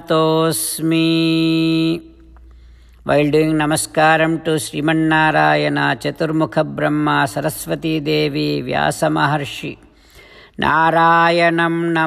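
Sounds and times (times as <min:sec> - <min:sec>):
man chanting: 0:00.0 - 0:02.2, 0:03.1 - 0:09.8, 0:10.6 - 0:12.0.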